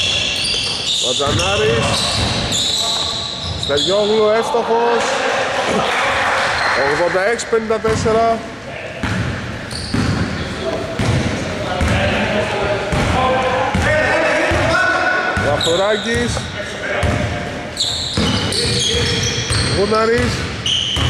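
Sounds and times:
voices: 0:00.9 - 0:09.1, 0:10.2 - 0:20.4
basketball dribbling thuds: 0:09.0 - 0:12.1, 0:15.4 - 0:17.4.

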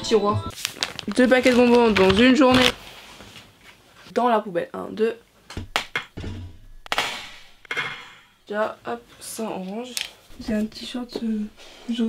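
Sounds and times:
rustle of packaging and wrappers: 0:00.5 - 0:03.8.

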